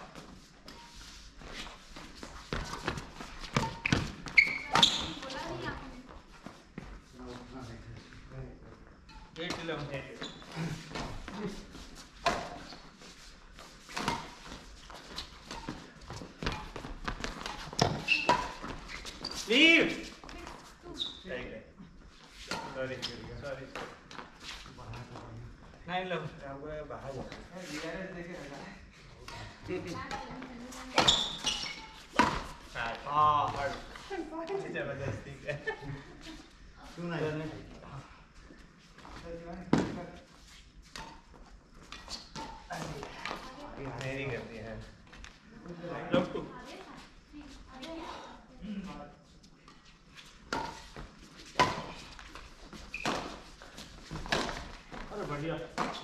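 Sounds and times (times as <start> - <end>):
badminton rackets hitting shuttlecock: 30.1 - 32.6, 50.5 - 52.2.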